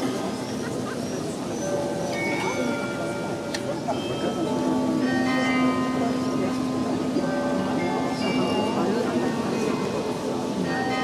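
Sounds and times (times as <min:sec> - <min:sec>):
carillon bells ringing: 0:00.0 - 0:11.0.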